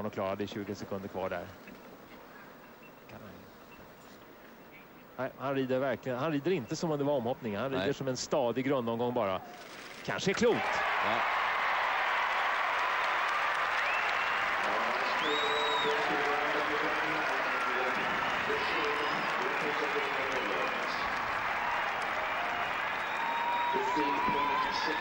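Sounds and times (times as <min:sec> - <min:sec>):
stadium crowd applauding: 0:09.4 - 0:25.0
crowd shouts and cheers: 0:10.3 - 0:25.0.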